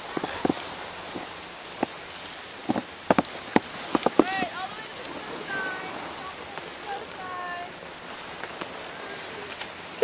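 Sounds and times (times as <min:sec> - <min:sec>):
steady outdoor hiss: 0:00.0 - 0:10.0.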